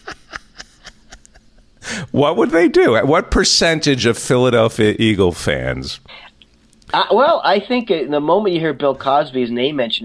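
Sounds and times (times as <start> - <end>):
breathy puffs: 1.8 - 2.2
sharp intake of breath: 1.8 - 2.2.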